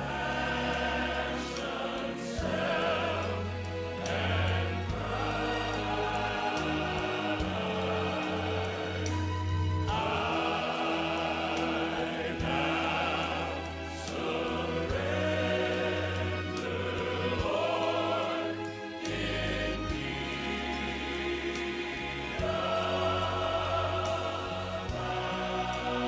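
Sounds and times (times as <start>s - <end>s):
choral gospel singing: 0.0s - 26.0s.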